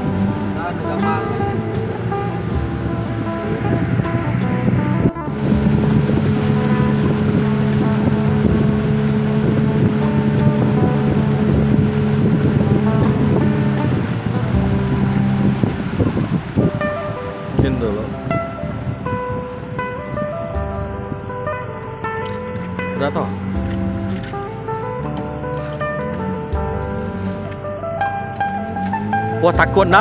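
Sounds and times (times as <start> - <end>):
boat engine running: 0.0 - 30.0
wind buffeting microphone: 0.0 - 30.0.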